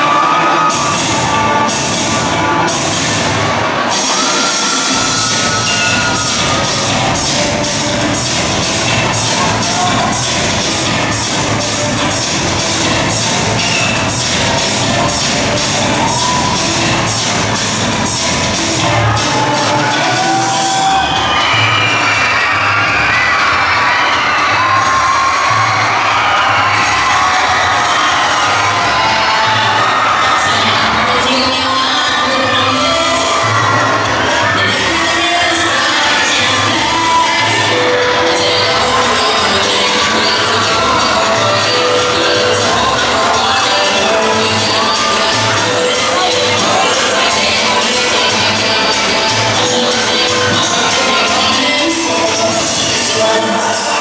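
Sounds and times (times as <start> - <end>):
audience cheering and shouting: 0.0 - 54.0
dance music with steady beat: 0.0 - 54.0.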